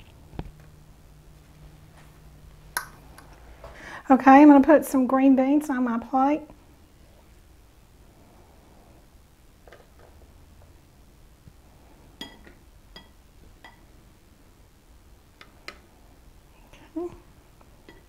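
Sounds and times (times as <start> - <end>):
utensil clinking on dishes: 12.2 - 13.9.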